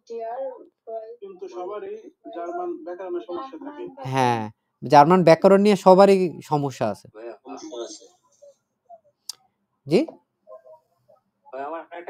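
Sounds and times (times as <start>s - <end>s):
faint low murmuring: 0.0s - 4.1s, 7.2s - 8.5s, 11.6s - 12.0s.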